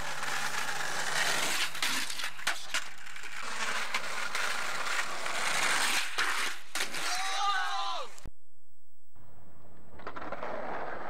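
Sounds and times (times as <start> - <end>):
skateboard wheels rolling on asphalt: 0.0 - 8.2, 9.2 - 11.0
skateboard clacks: 9.9 - 11.0.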